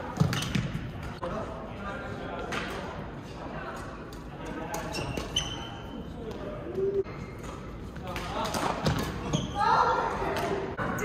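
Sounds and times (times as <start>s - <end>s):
shoe squeaks: 4.8s - 6.1s, 9.2s - 9.8s.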